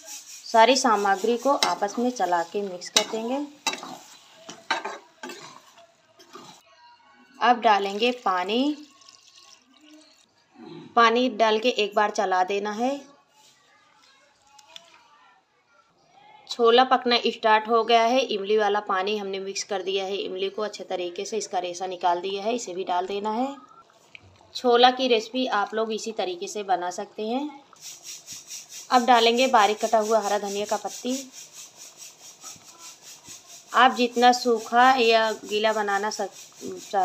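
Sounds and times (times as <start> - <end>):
ladle stirring liquid: 0.0 - 6.6, 7.9 - 10.3, 27.7 - 37.0
pot simmering hiss: 0.0 - 6.6, 27.7 - 37.0.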